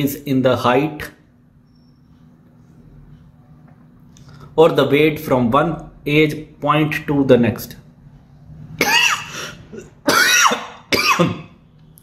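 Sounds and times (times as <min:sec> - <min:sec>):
man coughing into hand: 0:08.8 - 0:11.5.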